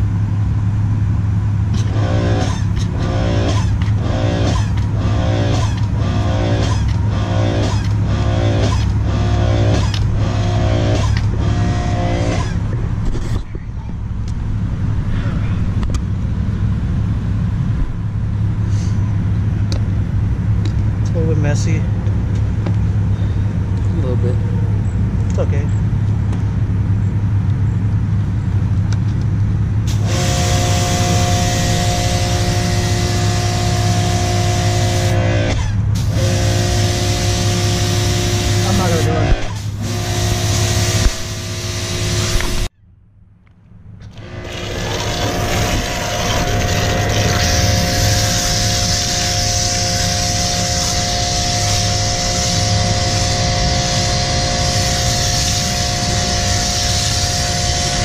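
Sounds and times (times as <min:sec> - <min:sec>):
pressure washer humming: 0:00.0 - 0:12.8, 0:29.8 - 0:42.7, 0:44.0 - 0:58.0
pump whining: 0:00.0 - 0:15.1, 0:29.8 - 0:42.7, 0:44.0 - 0:58.0
foam spray hissing: 0:44.9 - 0:58.0.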